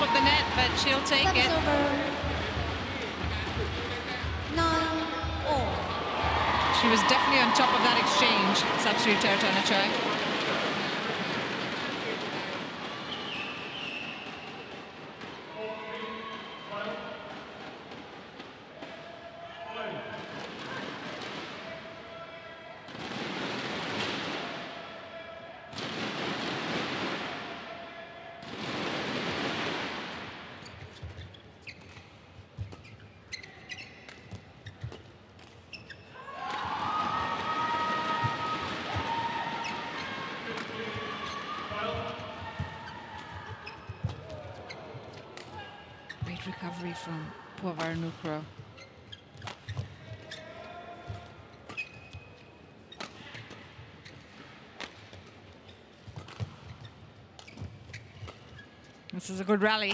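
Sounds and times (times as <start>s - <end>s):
crowd cheering and applause: 0.0s - 2.7s, 5.3s - 11.5s, 36.2s - 43.3s
crowd voices: 0.0s - 13.7s
shoes squeaking on court: 30.6s - 36.2s, 39.6s - 46.8s, 47.8s - 59.9s.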